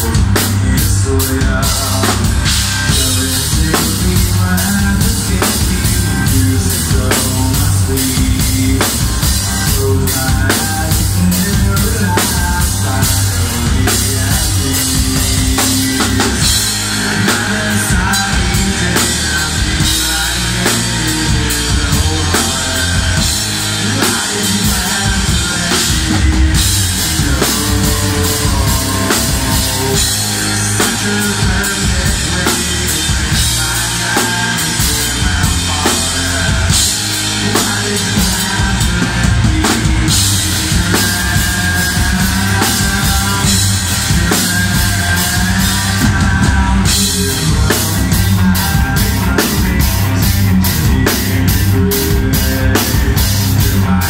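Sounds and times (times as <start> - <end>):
rock band playing live: 0.0 - 54.0.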